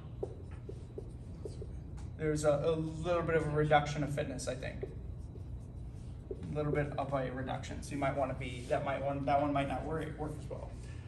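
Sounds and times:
marker writing on whiteboard: 0:00.0 - 0:02.2, 0:02.8 - 0:07.2.

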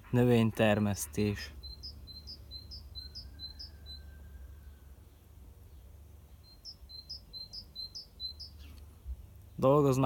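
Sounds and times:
faint low outdoor rumble: 0:00.0 - 0:10.0.

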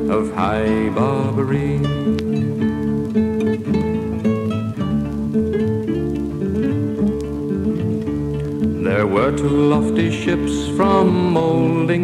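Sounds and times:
acoustic guitar strummed and picked: 0:00.0 - 0:12.0.

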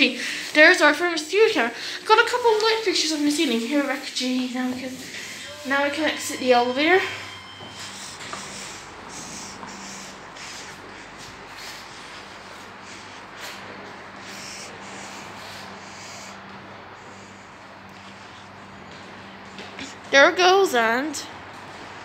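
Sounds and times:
faint hum: 0:00.0 - 0:22.0
light footsteps: 0:06.6 - 0:14.1.

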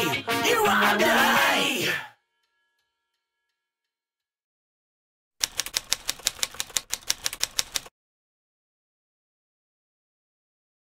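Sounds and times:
typewriter keys clacking: 0:05.4 - 0:07.9.

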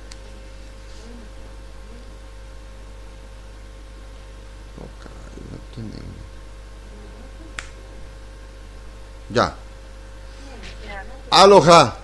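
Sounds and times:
electrical hum: 0:00.0 - 0:12.0
quiet spoken words: 0:04.8 - 0:07.6.

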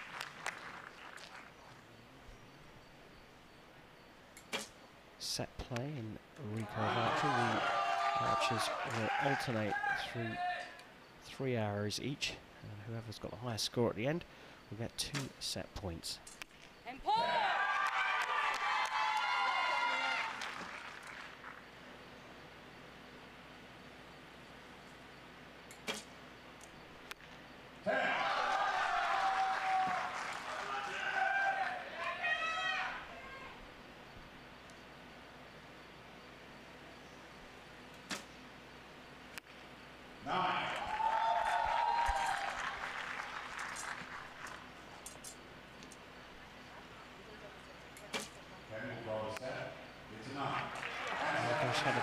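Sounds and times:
spectators applauding: 0:00.0 - 0:01.6, 0:06.7 - 0:09.7, 0:17.6 - 0:21.6, 0:28.0 - 0:32.2, 0:40.6 - 0:44.6, 0:50.4 - 0:52.0
faint steady hiss: 0:00.0 - 0:52.0.

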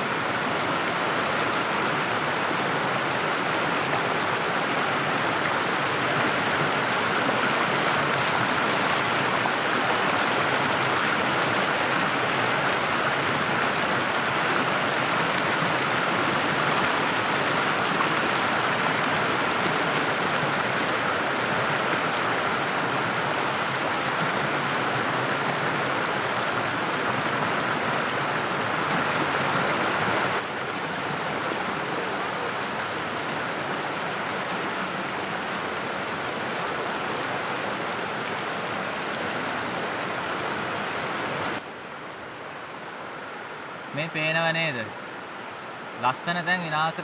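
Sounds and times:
stream water rushing over rocks: 0:00.0 - 0:47.0.

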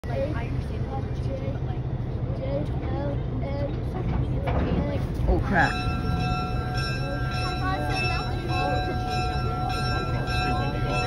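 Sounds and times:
people chatting: 0:00.0 - 0:06.0, 0:06.7 - 0:11.0
diesel locomotive rumbling: 0:00.0 - 0:11.0.

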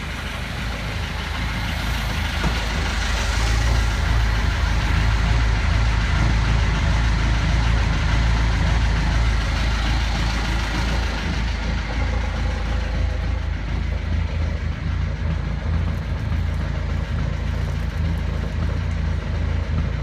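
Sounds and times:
diesel engine idling: 0:00.0 - 0:20.0.

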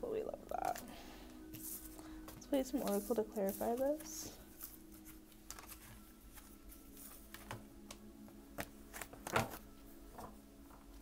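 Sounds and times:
faint steady hum: 0:00.0 - 0:11.0
cards being shuffled: 0:02.7 - 0:07.6, 0:08.6 - 0:10.3.

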